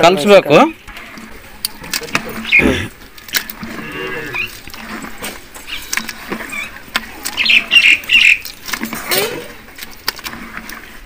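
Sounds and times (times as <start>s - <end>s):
bird squawking: 2.3s - 3.0s, 6.5s - 8.5s.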